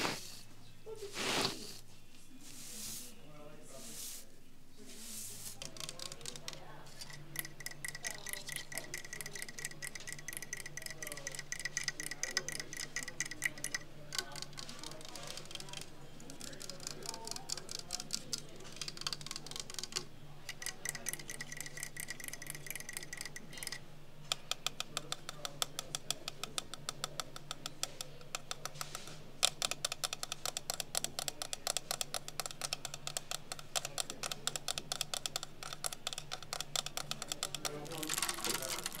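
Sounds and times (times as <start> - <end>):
fingernails tapping: 5.5 - 39.0.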